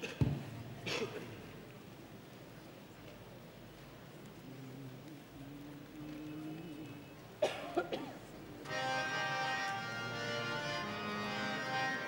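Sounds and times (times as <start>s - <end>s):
person coughing: 0.8s - 1.3s, 7.4s - 8.2s.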